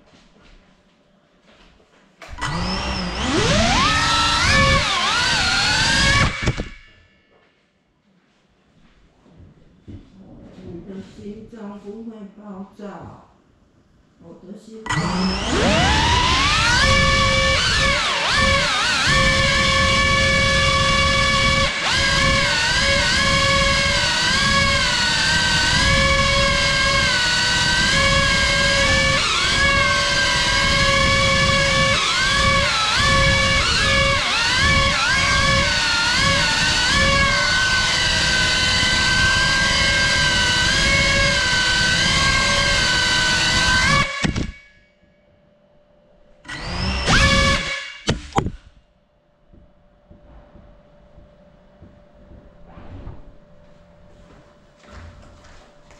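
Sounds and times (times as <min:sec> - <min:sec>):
drone motors whining: 0:02.2 - 0:07.2, 0:14.9 - 0:44.7, 0:46.5 - 0:48.8.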